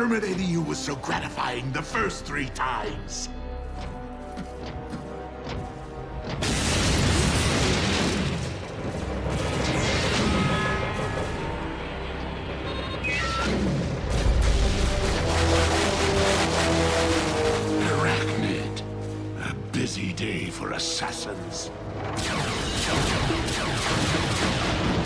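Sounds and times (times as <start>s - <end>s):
dramatic orchestral score: 0.0s - 25.0s
booming blasts: 6.3s - 11.0s, 22.0s - 25.0s.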